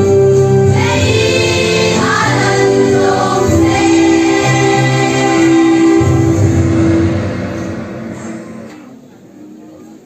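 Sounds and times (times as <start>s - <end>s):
choir singing final chord: 0.7s - 8.9s
hall echo: 0.8s - 9.2s.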